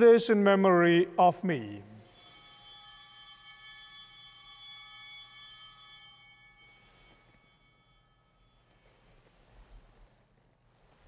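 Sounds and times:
high bell ringing: 2.0s - 10.3s.

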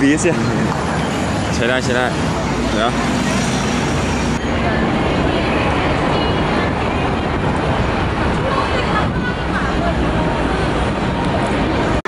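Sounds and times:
traffic rumble: 0.0s - 12.0s
people talking: 1.4s - 12.0s.

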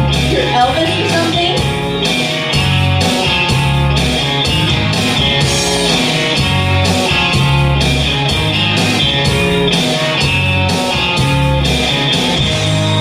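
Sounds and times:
bass: 0.0s - 13.0s
drum beat: 0.0s - 13.0s
guitar: 0.0s - 13.0s
instrumental backing track: 0.0s - 13.0s.

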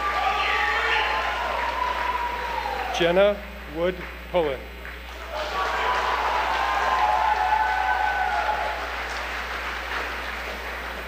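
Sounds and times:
audience applauding: 0.0s - 3.0s, 5.1s - 11.0s
people cheering: 0.0s - 3.4s, 5.1s - 11.0s.

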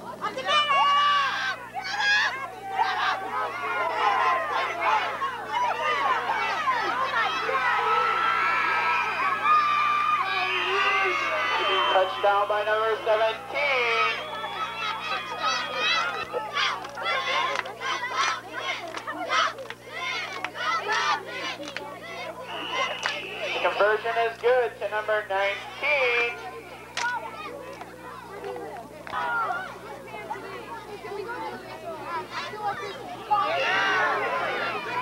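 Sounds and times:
crowd shouting and cheering: 0.0s - 35.0s
high-pitched yells: 0.5s - 18.4s.

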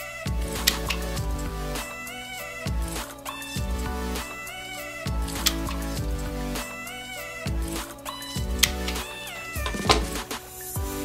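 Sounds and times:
instrumental music: 0.0s - 11.0s.

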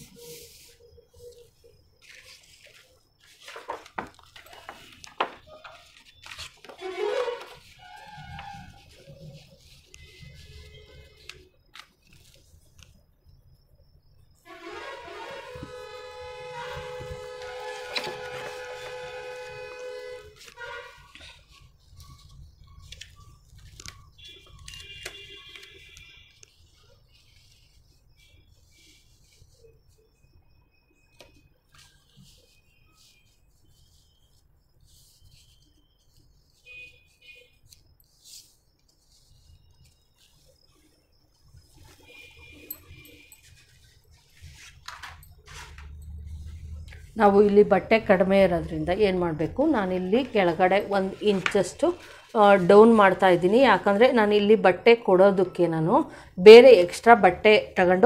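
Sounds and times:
paper rustling and tapping: 2.0s - 12.9s, 16.7s - 19.6s, 20.4s - 27.7s, 43.4s - 46.0s, 50.8s - 52.2s
steady horn-like tone: 14.4s - 21.2s.

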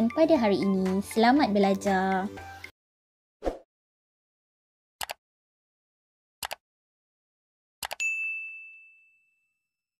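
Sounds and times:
notification bell ding: 8.0s - 9.7s.

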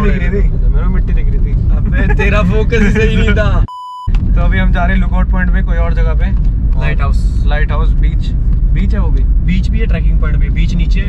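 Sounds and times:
car road and engine rumble: 0.0s - 11.0s
men talking: 0.0s - 11.0s
test-tone beep: 3.7s - 4.1s.

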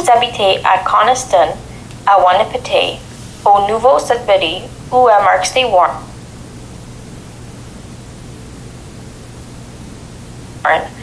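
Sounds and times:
person speaking: 0.0s - 6.1s
faint low hum: 0.0s - 11.0s
steady hiss: 0.0s - 11.0s.

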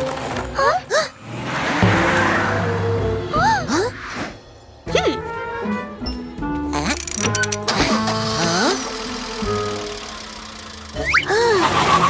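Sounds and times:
background music: 0.0s - 12.0s
steady engine hum: 7.8s - 12.0s.

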